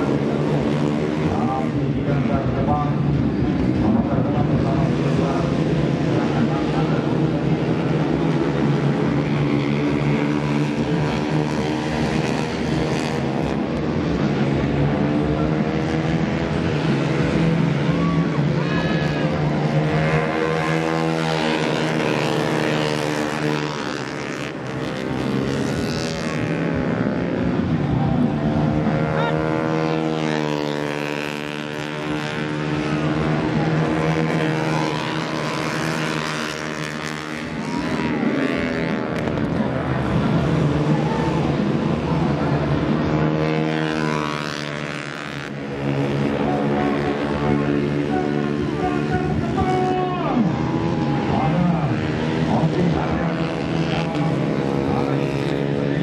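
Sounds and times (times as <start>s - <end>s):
racing motorcycle engines revving: 0.0s - 56.0s.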